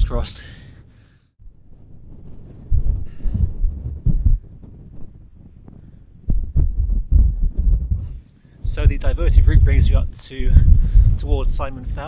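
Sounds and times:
wind buffeting microphone: 0:01.4 - 0:12.0.

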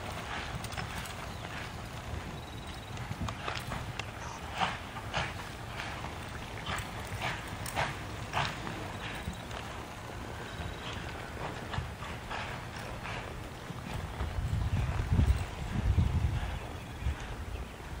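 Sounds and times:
horse hooves on dirt: 0:00.0 - 0:18.0.

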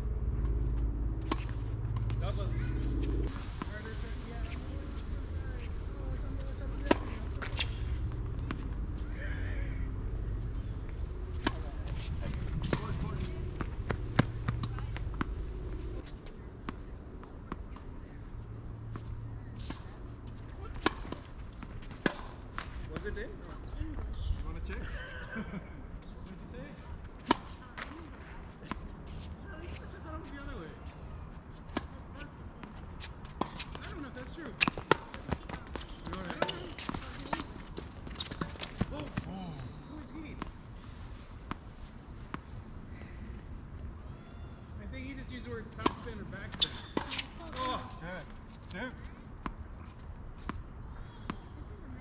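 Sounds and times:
tennis balls struck by racquets: 0:00.4 - 0:09.0, 0:09.7 - 0:17.8, 0:20.6 - 0:23.2, 0:27.2 - 0:27.9, 0:33.2 - 0:39.3, 0:45.3 - 0:48.3
balls bouncing on hard court: 0:06.3 - 0:09.1, 0:10.9 - 0:15.4, 0:32.7 - 0:39.4, 0:45.7 - 0:47.7.

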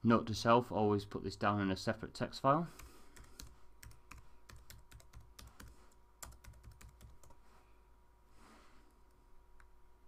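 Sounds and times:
typing on computer keyboard: 0:02.8 - 0:07.4.

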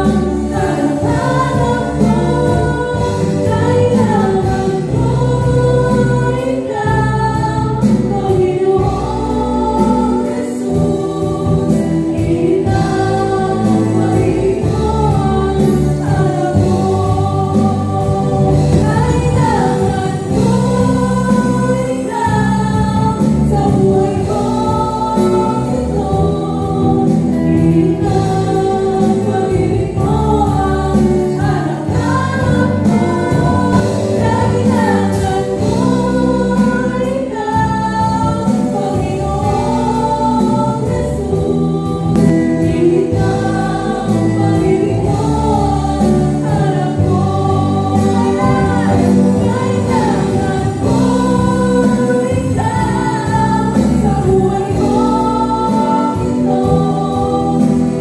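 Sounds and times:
acoustic guitar: 0:00.0 - 0:58.0
drums: 0:00.0 - 0:58.0
electric bass: 0:00.0 - 0:58.0
female vocalists singing: 0:00.0 - 0:58.0
keyboard: 0:00.0 - 0:58.0.

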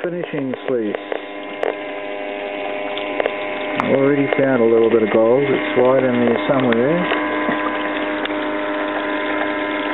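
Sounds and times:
electric water pump humming: 0:00.0 - 0:09.9
water washing over sluice: 0:00.0 - 0:09.9.

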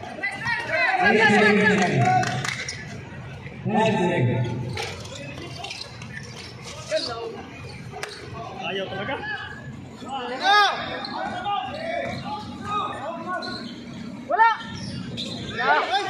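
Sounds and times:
voices of players and spectators: 0:00.0 - 0:16.0.

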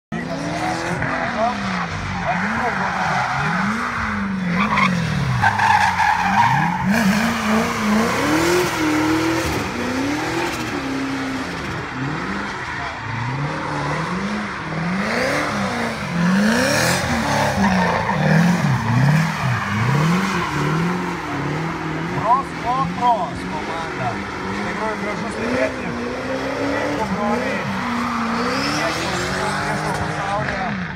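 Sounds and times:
car engine revving: 0:00.1 - 0:30.9
tyres squealing on asphalt: 0:00.3 - 0:30.9.

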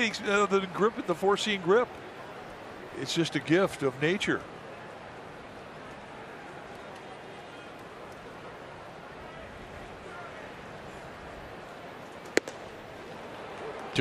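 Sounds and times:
crowd murmur: 0:00.0 - 0:14.0
ball smacking into a mitt: 0:12.3 - 0:12.6.

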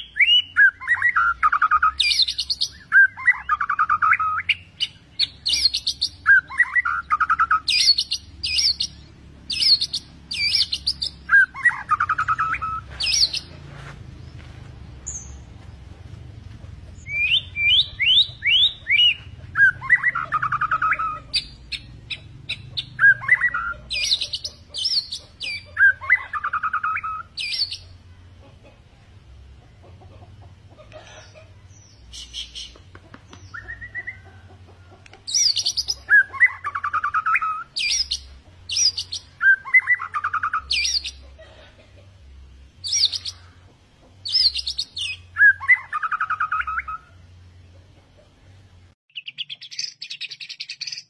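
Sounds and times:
songbird whistles and trills: 0:00.0 - 0:13.5, 0:17.0 - 0:27.9, 0:32.0 - 0:34.3, 0:35.1 - 0:41.2, 0:44.2 - 0:47.2.

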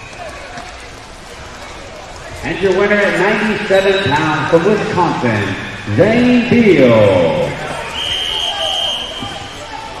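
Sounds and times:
faint chatter in a hall: 0:00.0 - 0:10.0
shrill whistle blown: 0:07.8 - 0:09.6.

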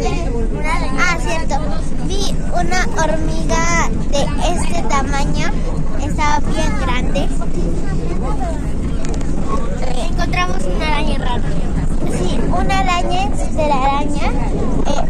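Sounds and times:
girl talking: 0:00.0 - 0:08.8, 0:09.8 - 0:15.0
bus engine and road noise: 0:00.0 - 0:15.0.

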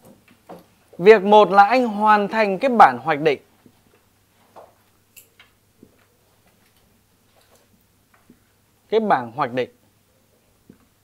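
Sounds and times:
quiet room hum: 0:00.0 - 0:11.0.

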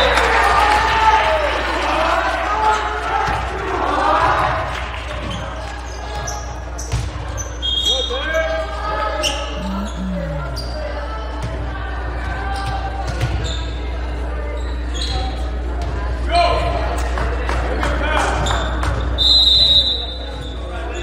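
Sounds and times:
voices in echoing gym: 0:00.0 - 0:21.0
ball bouncing on hardwood court: 0:06.9 - 0:07.2
high shoe squeaks: 0:09.2 - 0:10.8, 0:14.5 - 0:15.5.

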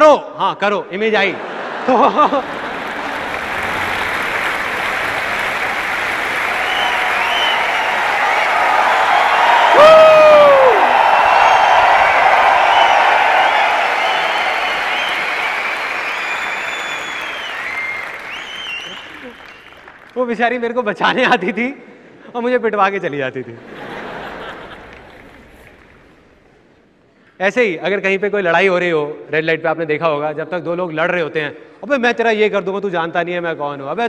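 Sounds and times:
audience applauding and cheering: 0:01.9 - 0:20.4, 0:24.1 - 0:26.5
loud falling whoop: 0:06.5 - 0:15.6.

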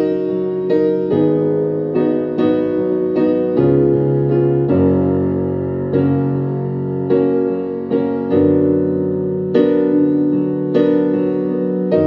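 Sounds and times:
piano playing gospel chords: 0:00.0 - 0:12.0.

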